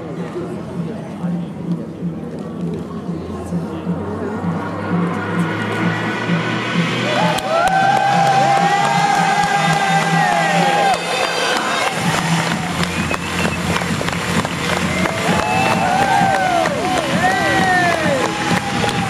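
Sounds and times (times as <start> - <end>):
music with steady beat: 0.0 - 19.0
audience cheering and whooping: 7.0 - 19.0
audience clapping: 7.1 - 19.0.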